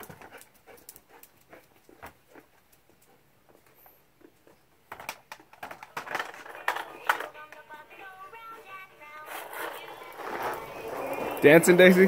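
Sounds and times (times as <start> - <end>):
plastic toy rattling on concrete: 4.9 - 7.8.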